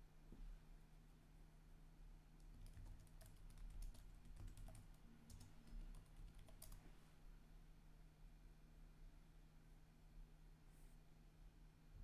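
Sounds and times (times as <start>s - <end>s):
faint irregular clicks: 2.4s - 6.9s.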